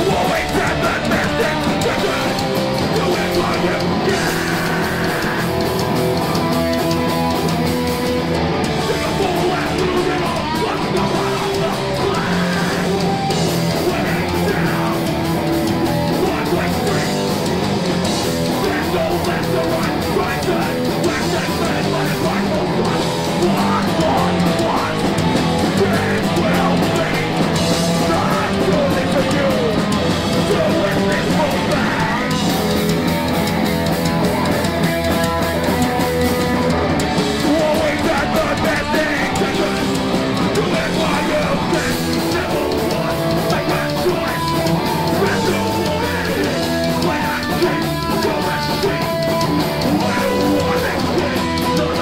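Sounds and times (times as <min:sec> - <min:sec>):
bass guitar: 0:00.0 - 0:52.0
distorted electric guitar: 0:00.0 - 0:52.0
drums: 0:00.0 - 0:52.0
shouted vocals: 0:00.0 - 0:52.0.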